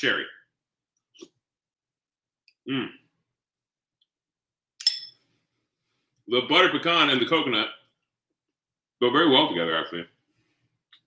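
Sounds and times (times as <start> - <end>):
metal spoon clinking glass bowl: 4.8 - 5.2.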